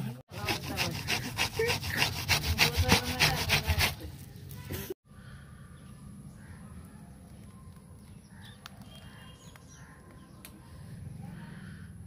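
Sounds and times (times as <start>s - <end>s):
fruit pulp scraped on metal grater: 0.3s - 4.1s.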